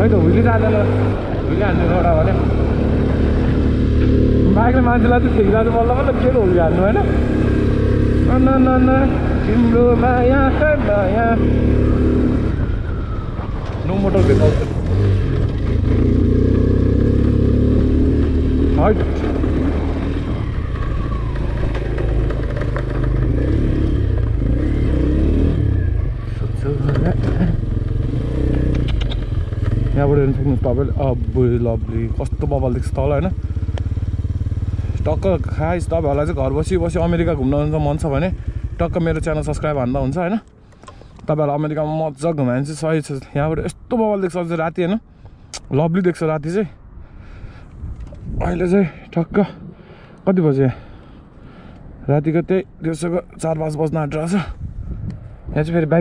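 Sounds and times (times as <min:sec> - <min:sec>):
motorcycle engine running: 0:00.0 - 0:13.0, 0:14.0 - 0:40.2.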